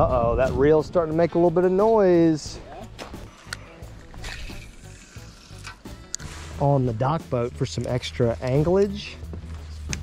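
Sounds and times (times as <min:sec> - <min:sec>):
fishing reel gears grinding: 0:04.2 - 0:05.8.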